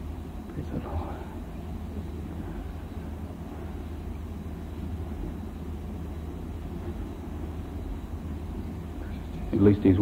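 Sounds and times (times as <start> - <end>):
low hum: 0.0 - 10.0
tape hiss: 0.0 - 10.0.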